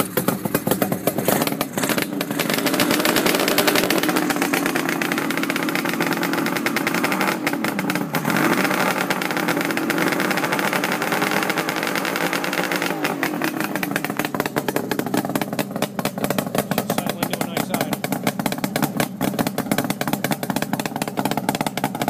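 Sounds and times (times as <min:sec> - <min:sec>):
two-stroke motorcycle engine idling: 0:00.0 - 0:22.0.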